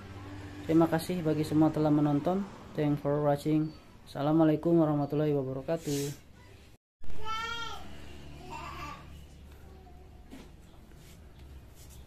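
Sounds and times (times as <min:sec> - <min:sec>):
man speaking: 0:00.7 - 0:06.2.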